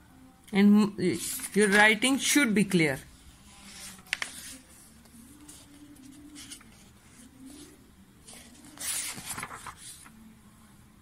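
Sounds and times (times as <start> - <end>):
paper pages rustling: 1.1 - 2.5, 3.4 - 10.2.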